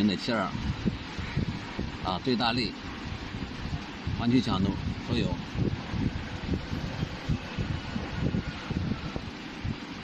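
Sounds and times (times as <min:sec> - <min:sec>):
wind noise: 0:00.0 - 0:10.0.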